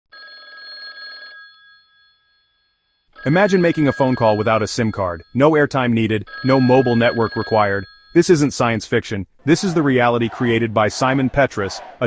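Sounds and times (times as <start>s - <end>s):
telephone ringing: 0.1s - 8.2s.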